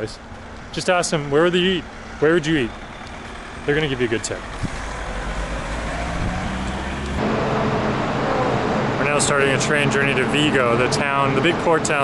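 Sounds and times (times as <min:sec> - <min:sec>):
street traffic rumble: 0:00.0 - 0:12.0
steady hum in station hall: 0:07.2 - 0:11.9.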